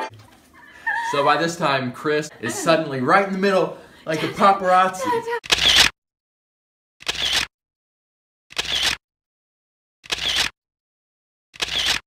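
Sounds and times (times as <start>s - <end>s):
rapid camera shutter clicks: 5.4s - 5.9s, 7.0s - 7.5s, 8.5s - 9.0s, 10.0s - 10.6s, 11.6s - 12.0s.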